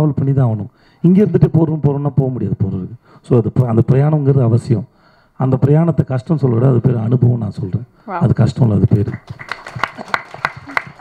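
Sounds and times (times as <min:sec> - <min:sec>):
scattered hand claps: 0:09.0 - 0:11.0.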